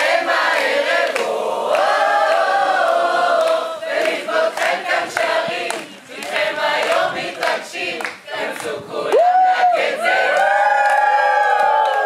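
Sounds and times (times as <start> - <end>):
mixed choir singing: 0.0 - 10.4.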